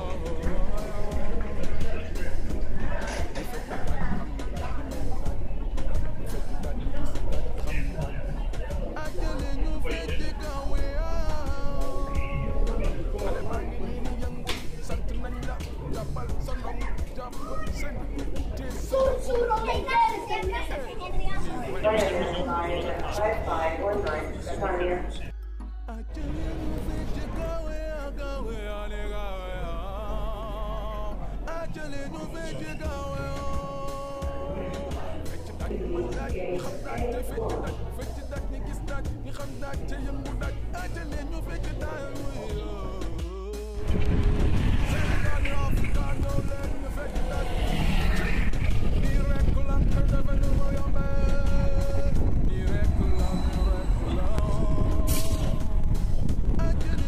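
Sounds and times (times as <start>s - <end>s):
children talking and calling out: 0.2s - 22.8s
low rumble of road noise: 26.1s - 57.0s
motor scooter passing: 43.8s - 49.6s
electric trolleybus approaching: 43.8s - 56.6s.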